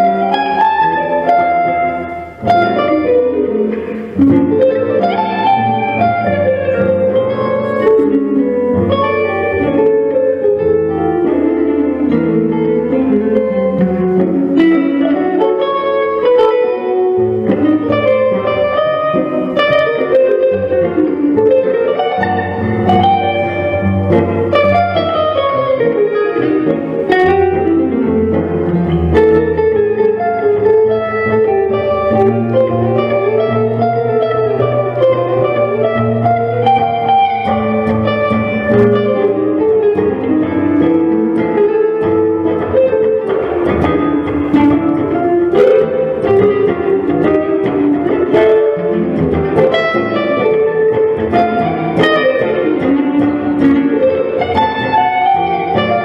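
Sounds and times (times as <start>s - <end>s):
jazz guitar melody: 0.0s - 56.0s
low musical accompaniment: 0.0s - 56.0s.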